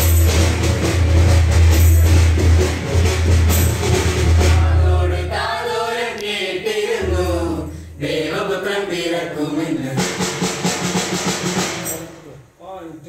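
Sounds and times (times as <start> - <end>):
bass-heavy accompaniment: 0.0 - 5.6, 7.0 - 8.1
steady drumming: 0.0 - 5.7, 6.8 - 12.6
choir singing a carol: 4.3 - 10.3.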